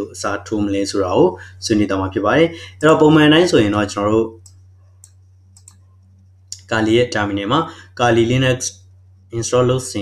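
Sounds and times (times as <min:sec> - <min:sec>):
low electrical hum: 0:00.0 - 0:10.0
computer mouse clicks: 0:04.4 - 0:06.7.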